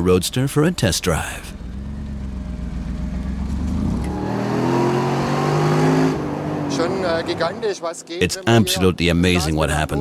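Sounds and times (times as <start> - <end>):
car engine accelerating: 0.7 - 7.7.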